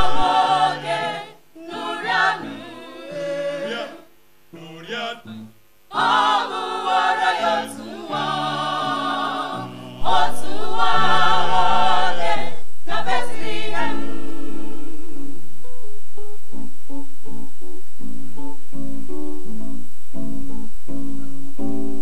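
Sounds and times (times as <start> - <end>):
choir singing a cappella: 0.0 - 15.4
acoustic guitar playing: 6.0 - 22.0.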